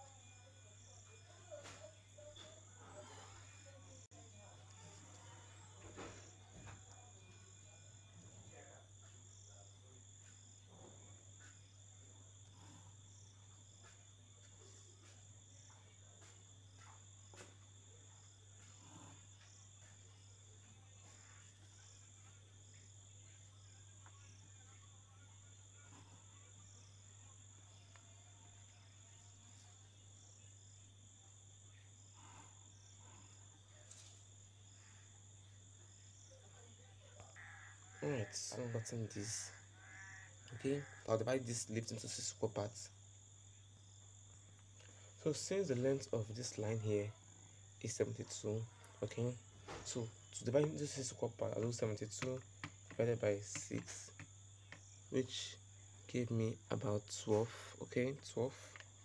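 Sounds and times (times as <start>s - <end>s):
faint high-pitched whine: 0.0s - 59.0s.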